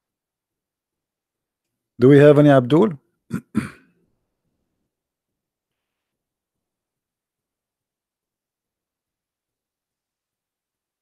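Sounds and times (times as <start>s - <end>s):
man clearing his throat: 3.3s - 4.0s.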